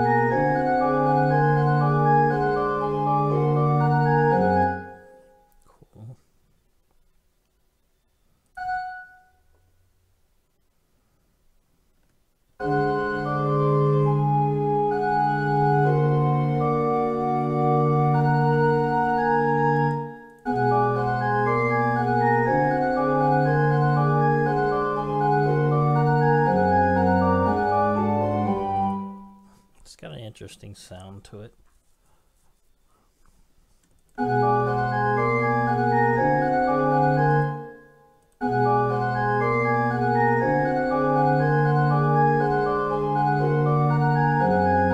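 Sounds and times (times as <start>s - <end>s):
synthesized pipe organ fugue: 0.0s - 5.4s, 12.6s - 29.6s, 34.2s - 44.9s.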